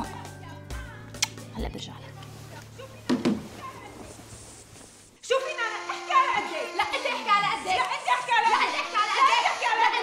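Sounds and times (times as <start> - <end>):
women arguing: 5.2 - 10.0.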